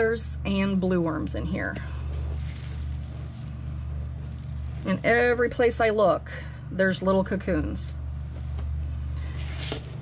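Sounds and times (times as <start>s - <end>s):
low hum: 0.0s - 10.0s
hand rustling damp compost: 1.9s - 6.0s.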